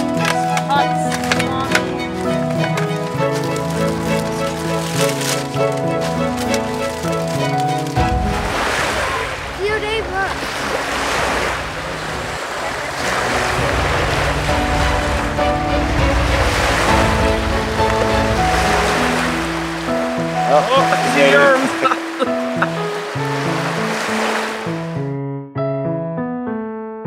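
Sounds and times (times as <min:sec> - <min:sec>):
music of held notes: 0:00.0 - 0:10.2, 0:11.4 - 0:24.6
lake waves splashing: 0:00.0 - 0:25.0
wind: 0:00.0 - 0:25.0
voices calling out: 0:17.1 - 0:23.0.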